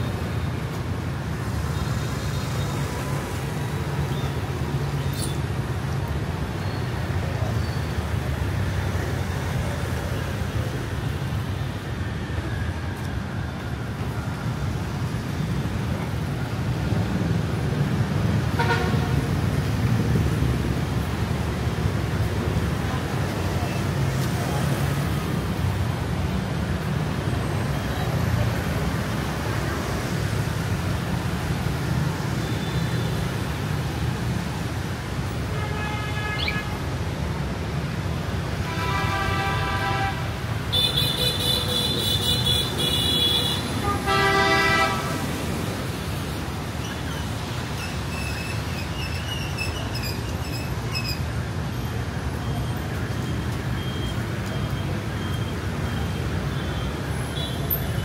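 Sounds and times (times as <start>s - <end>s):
motorbikes and cars passing: 0.0s - 58.0s
vehicle horn: 18.6s - 19.1s, 38.6s - 45.2s.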